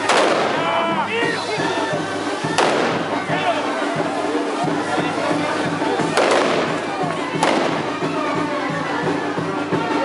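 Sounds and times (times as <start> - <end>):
firework bangs: 0.0 - 0.7, 2.1 - 8.2
crackling firework hiss: 0.0 - 8.4
band music: 0.0 - 10.0
crowd voices: 0.0 - 10.0.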